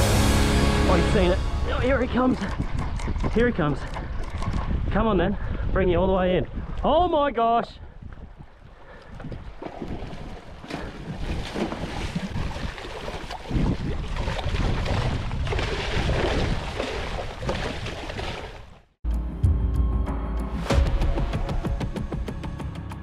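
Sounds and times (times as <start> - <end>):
music: 0.0 - 2.0, 19.0 - 23.0
wind on microphone: 1.7 - 7.2, 7.8 - 17.9
water splashing and churning: 6.4 - 19.0.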